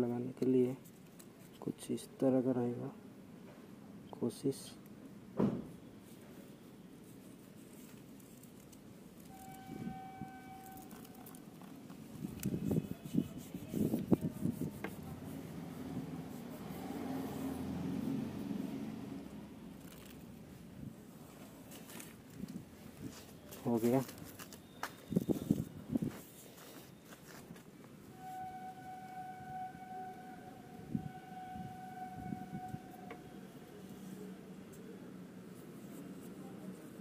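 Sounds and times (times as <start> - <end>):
soft handling noise: 0.2 - 1.8, 6.0 - 9.7, 10.6 - 15.2, 19.8 - 28.1
sharp thump: 5.4 - 5.7
fingers rubbing sticker on rim: 7.1 - 18.5
steady siren-like tone: 9.2 - 11.4, 28.1 - 33.9.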